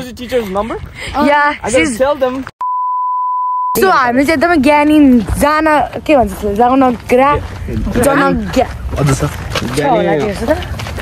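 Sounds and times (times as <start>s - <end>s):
pure beep tone: 2.6s - 3.8s.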